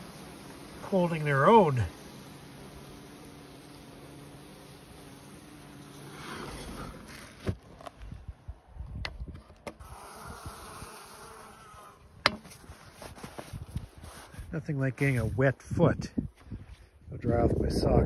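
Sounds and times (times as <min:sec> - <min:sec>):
honeybees buzzing: 0:00.0 - 0:07.8, 0:09.7 - 0:15.3.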